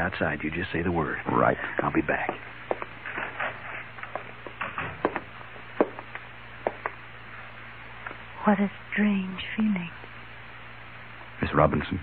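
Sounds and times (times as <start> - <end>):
low recording hum: 0.0 - 12.0
footsteps on wooden floor: 1.7 - 7.0.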